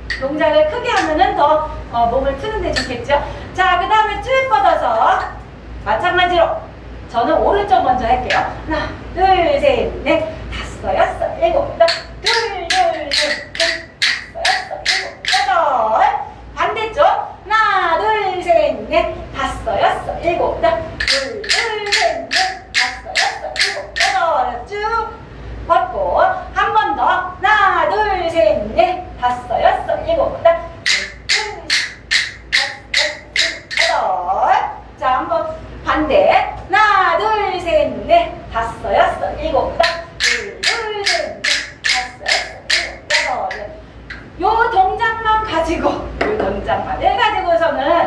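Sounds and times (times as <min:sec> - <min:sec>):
wooden rhythm sticks clacking: 0:00.0 - 0:01.4, 0:02.6 - 0:03.1, 0:11.8 - 0:15.8, 0:21.0 - 0:24.6, 0:30.8 - 0:34.2, 0:39.7 - 0:44.4
woman's voice: 0:00.1 - 0:31.9, 0:32.6 - 0:43.8, 0:44.4 - 0:48.0.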